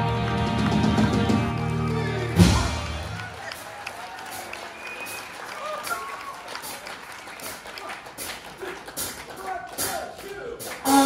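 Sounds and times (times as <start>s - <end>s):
audience applauding and cheering: 0.0s - 11.0s
whoops and shouts: 4.0s - 6.5s.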